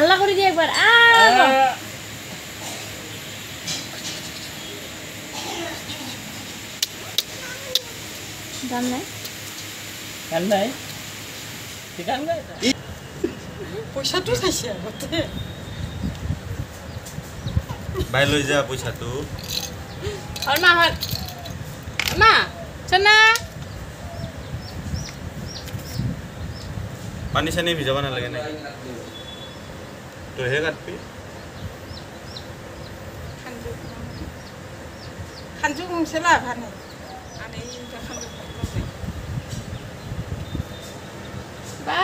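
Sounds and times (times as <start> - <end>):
high drawn-out vocal calls: 0.0 - 16.6, 17.3 - 26.8, 31.0 - 42.0
light metallic jingling: 18.3 - 22.2.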